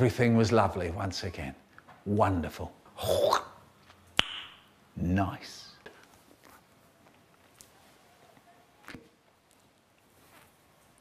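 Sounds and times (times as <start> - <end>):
lip pop: 4.2 - 4.7.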